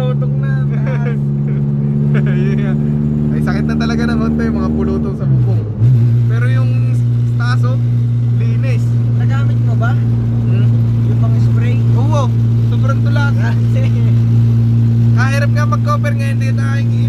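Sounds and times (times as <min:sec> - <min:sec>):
car engine drone inside cabin: 0:00.0 - 0:17.0.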